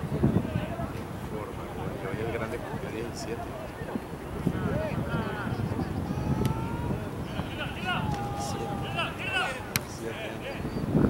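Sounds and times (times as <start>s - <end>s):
distant shouts of players: 4.6s - 10.7s.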